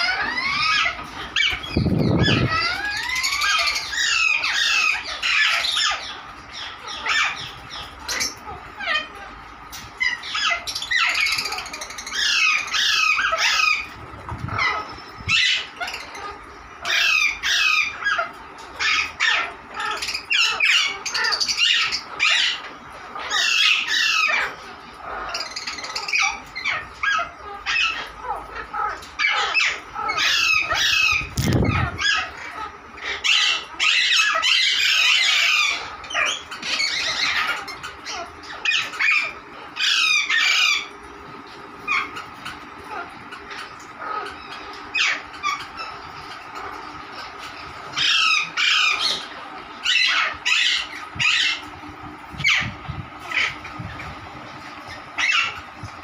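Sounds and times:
parakeets squawking and chirping: 0.0 - 56.0.

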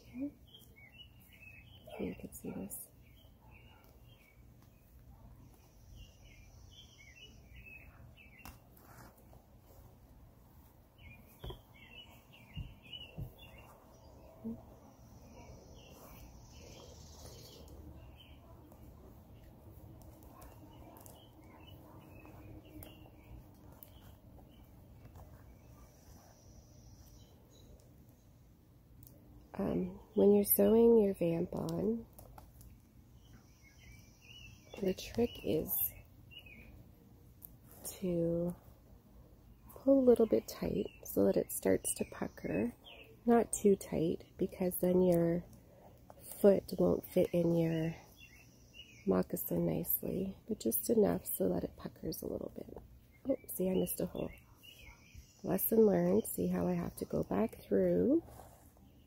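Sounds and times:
faint bird chirps: 0.0 - 9.1, 11.0 - 28.4, 32.6 - 36.8, 39.5 - 58.2
leather clicks and rustles: 18.6 - 26.3.

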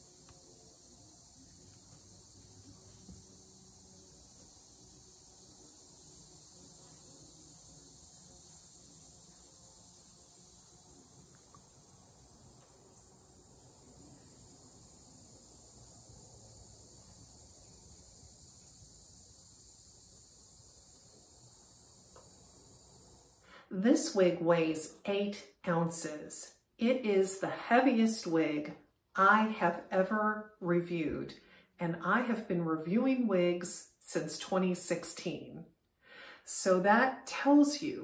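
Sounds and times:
high-pitched insect chorus: 0.0 - 29.9, 33.6 - 38.0.

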